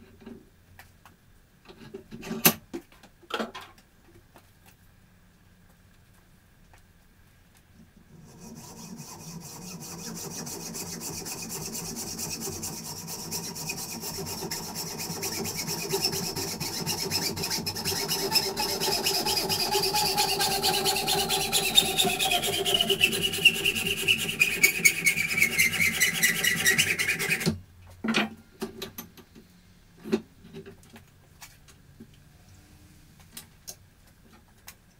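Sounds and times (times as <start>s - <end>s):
hacksaw cutting metal tube: 8.2s - 27.6s.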